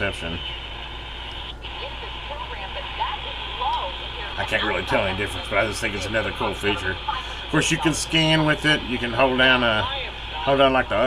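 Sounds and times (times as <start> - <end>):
faint broadcast voice: 0.0 - 0.9, 1.5 - 11.0
radio static hiss: 0.0 - 11.0.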